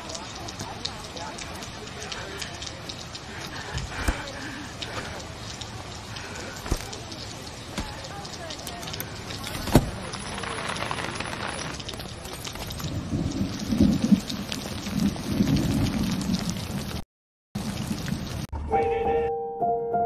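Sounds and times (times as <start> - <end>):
heavy rain on street and umbrellas: 0.0 - 17.0, 17.6 - 18.8.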